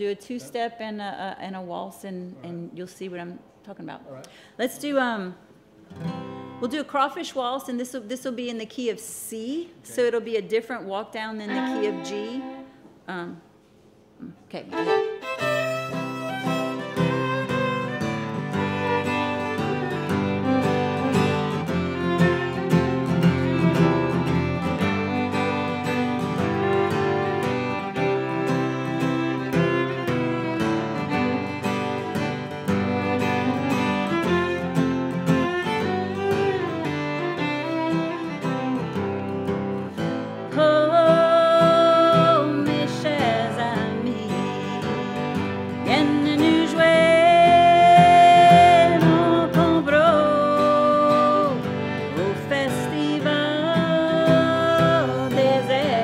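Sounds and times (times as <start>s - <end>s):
acoustic guitar strumming: 5.9s - 6.7s, 11.5s - 12.6s, 14.8s - 56.0s
bowed fiddle melody: 11.4s - 12.8s, 14.7s - 56.0s.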